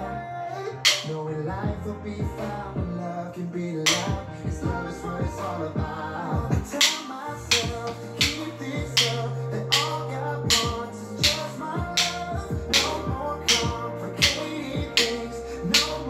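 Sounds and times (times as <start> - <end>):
pop worship song: 0.0 - 16.0
drumsticks clicking: 0.8 - 1.3, 3.9 - 4.2, 6.6 - 16.0.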